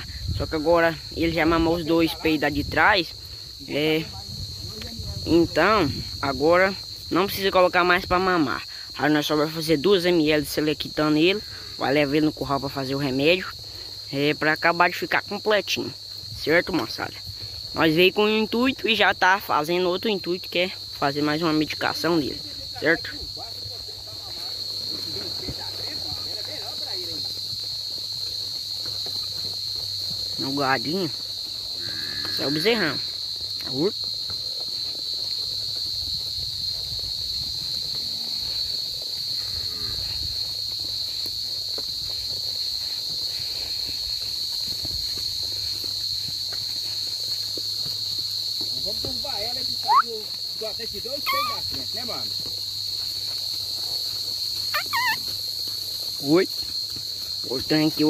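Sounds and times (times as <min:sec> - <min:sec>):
high-pitched insect chorus: 0:00.0 - 0:58.0
high warbling call: 0:49.9 - 0:50.1.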